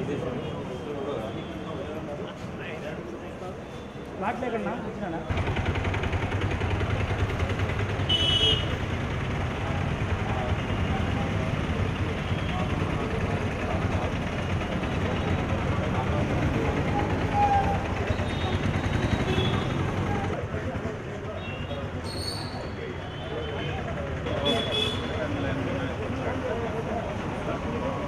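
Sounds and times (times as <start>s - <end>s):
street traffic rumble: 0.0s - 28.0s.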